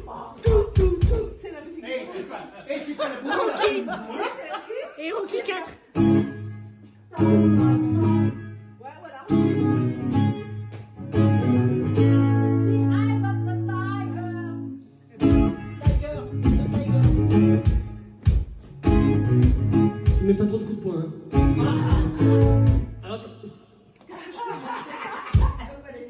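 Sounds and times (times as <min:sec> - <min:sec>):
acoustic guitar strumming: 0:05.9 - 0:20.7, 0:21.3 - 0:23.1.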